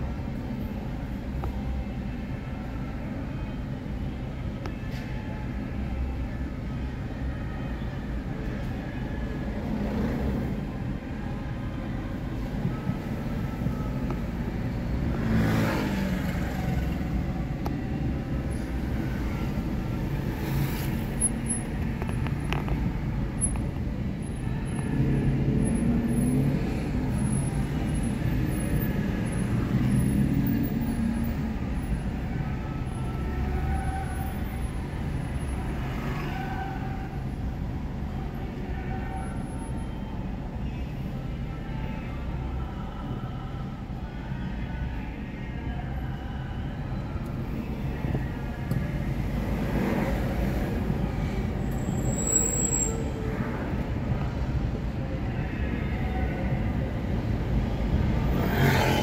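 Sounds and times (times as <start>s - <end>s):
car engine and road rumble: 0.0s - 59.0s.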